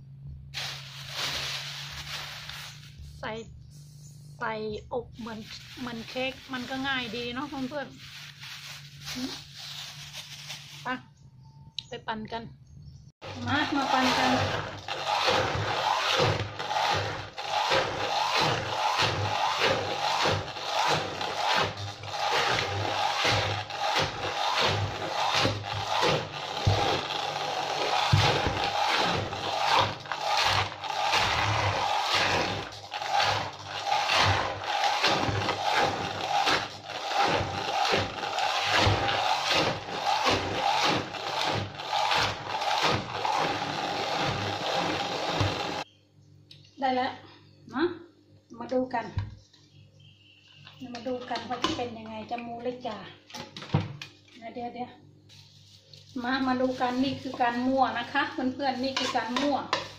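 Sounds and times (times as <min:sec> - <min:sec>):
stick blender motor blending fruit: 0:13.2 - 0:45.8, 0:56.6 - 0:59.9.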